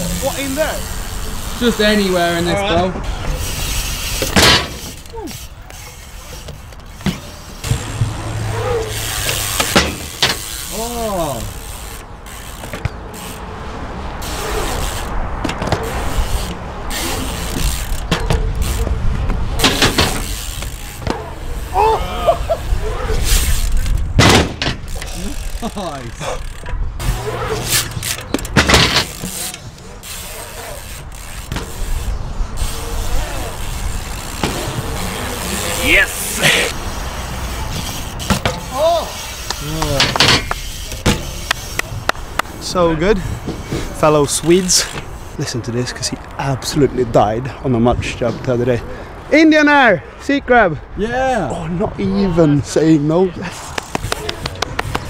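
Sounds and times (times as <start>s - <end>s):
riders shouting: 0.0s - 3.7s, 7.7s - 12.0s, 18.6s - 23.7s, 24.9s - 28.0s, 29.0s - 37.8s, 38.5s - 41.0s
bike tyres rolling on concrete: 0.0s - 55.0s.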